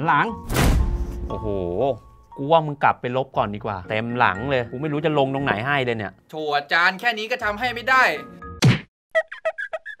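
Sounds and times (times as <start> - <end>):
comic whack: 0.4 - 1.3, 8.6 - 8.9.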